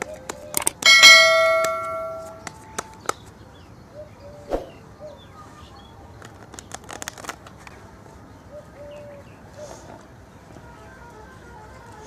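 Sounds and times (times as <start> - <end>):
bell chime ringing: 0.9 - 2.5.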